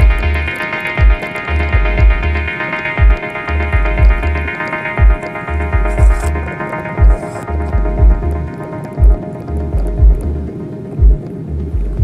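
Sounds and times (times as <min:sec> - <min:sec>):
bass notes: 0:00.0 - 0:12.0
deep kick drum: 0:00.0 - 0:12.0
sustained synth chords: 0:00.0 - 0:12.0.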